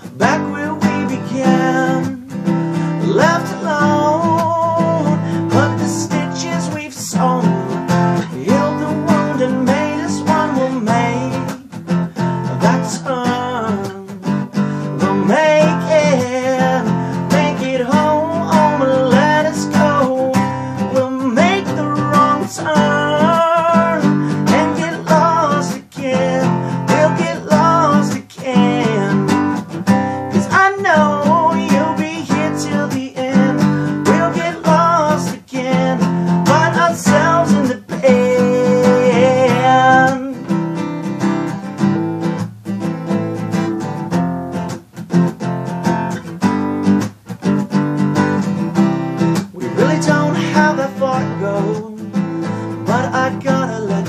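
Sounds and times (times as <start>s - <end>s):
man singing: 0.0s - 40.8s, 49.4s - 54.0s
acoustic guitar strumming: 0.0s - 54.0s.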